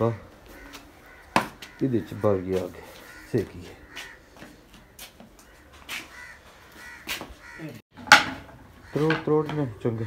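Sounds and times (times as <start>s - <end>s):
crow cawing: 0.4s - 7.8s, 8.8s - 9.3s.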